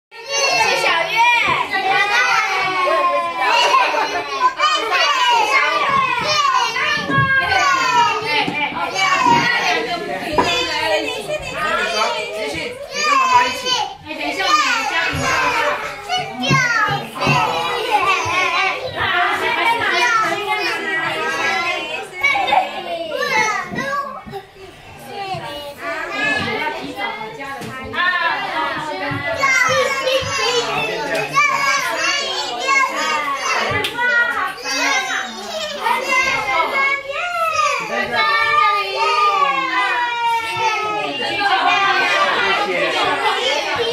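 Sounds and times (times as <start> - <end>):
young children talking and calling out: 0.1 - 43.9.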